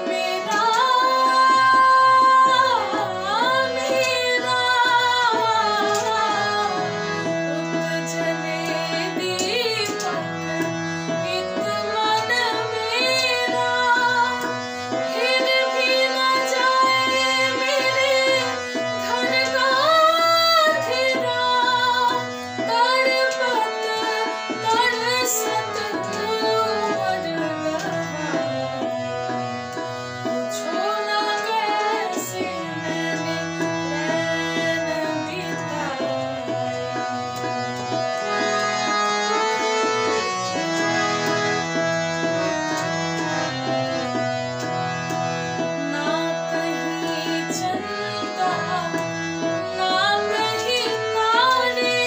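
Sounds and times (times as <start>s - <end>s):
woman singing: 0.0s - 29.7s, 30.3s - 37.7s, 45.8s - 52.0s
instrumental accompaniment: 0.0s - 52.0s.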